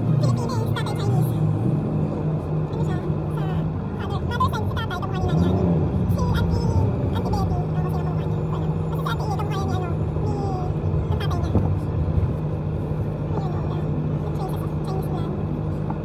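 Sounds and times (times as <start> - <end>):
passers-by talking: 0.0 - 16.0
traffic engines humming: 0.0 - 16.0.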